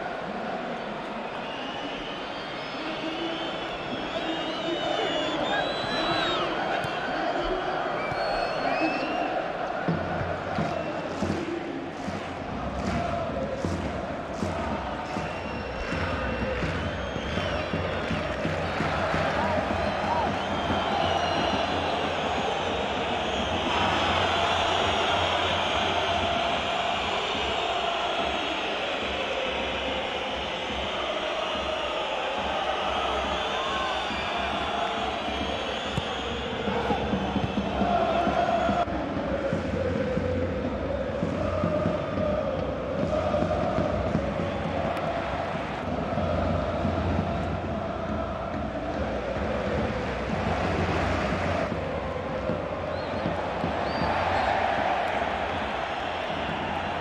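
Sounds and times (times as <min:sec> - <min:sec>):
stadium crowd chanting: 0:00.0 - 0:57.0.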